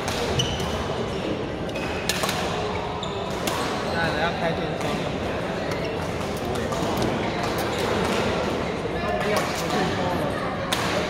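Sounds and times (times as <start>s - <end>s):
racket hitting shuttlecock: 0.0s - 0.8s, 1.8s - 2.6s
people talking: 2.1s - 11.0s.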